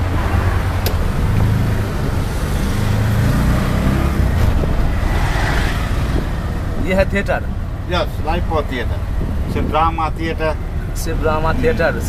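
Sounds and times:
auto-rickshaw engine rumble: 0.0 - 12.0
road and wind noise: 0.0 - 12.0.

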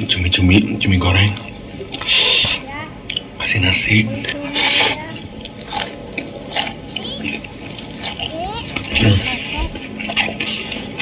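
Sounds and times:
man chewing food: 1.2 - 11.0.

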